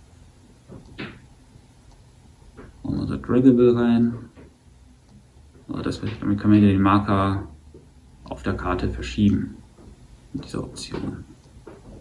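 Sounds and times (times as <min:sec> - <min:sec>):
man speaking: 0:02.8 - 0:04.3, 0:05.7 - 0:07.6, 0:08.2 - 0:09.6, 0:10.3 - 0:11.4.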